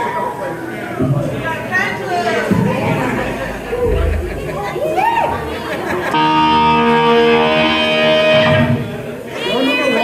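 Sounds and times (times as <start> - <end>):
crowd chatter: 0.0 - 10.0
low steady hum: 1.0 - 8.9.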